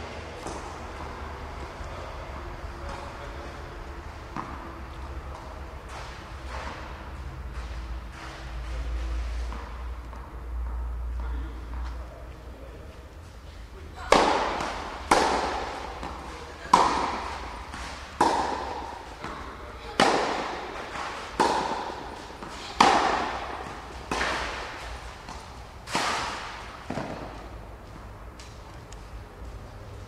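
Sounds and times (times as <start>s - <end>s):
tennis ball struck by rackets: 0.4s - 0.8s, 4.2s - 7.0s, 14.1s - 27.5s.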